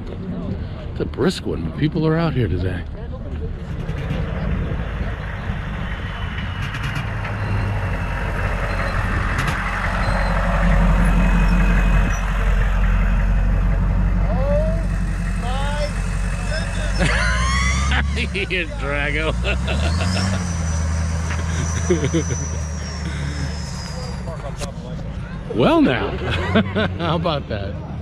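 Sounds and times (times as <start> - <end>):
vehicle driving past: 3.6 - 28.0.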